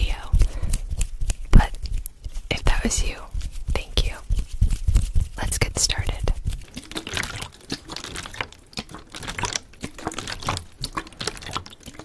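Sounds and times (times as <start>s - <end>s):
woman whispering: 0.0s - 0.4s, 1.6s - 1.8s, 2.5s - 4.3s, 5.4s - 6.4s
soft low thumps: 0.0s - 6.8s.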